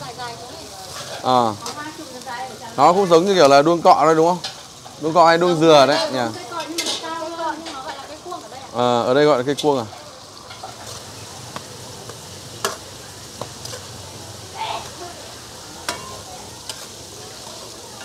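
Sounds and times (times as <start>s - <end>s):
grubs sizzling in hot oil: 0.0s - 18.0s.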